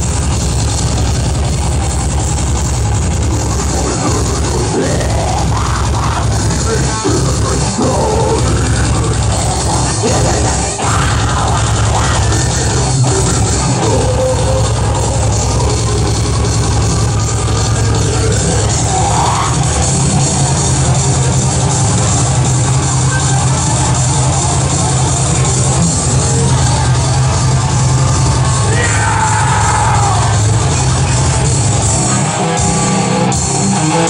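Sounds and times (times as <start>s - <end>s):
thrash metal band playing: 0.0s - 34.0s.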